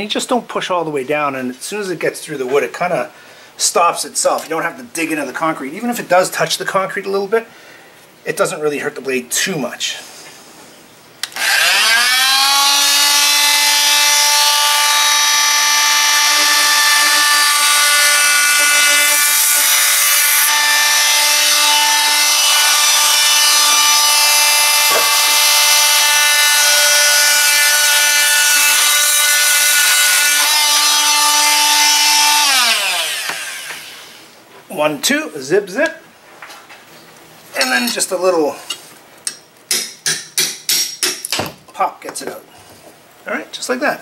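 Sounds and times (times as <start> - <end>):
oscillating multi-tool cutting wood: 11.2 - 34.2.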